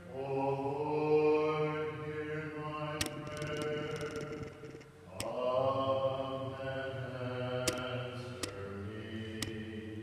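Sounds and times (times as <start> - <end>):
person singing chant-like melody: 0.0 - 10.0
sharp click: 3.0 - 5.4, 7.7 - 8.6.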